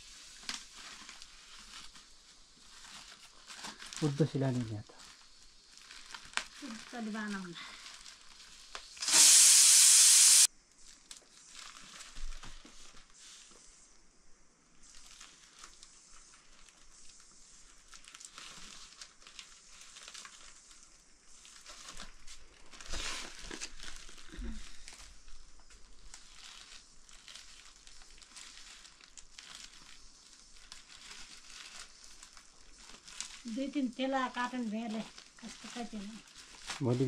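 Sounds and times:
plastic sack rustling and crinkling: 0.0 - 9.1, 10.8 - 13.9, 14.7 - 37.0.

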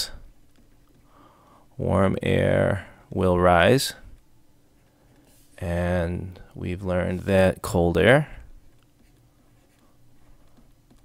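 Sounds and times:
stylus scratching on tablet: 0.0 - 1.2, 4.7 - 5.6, 8.6 - 11.0
low steady hum: 0.0 - 11.0.

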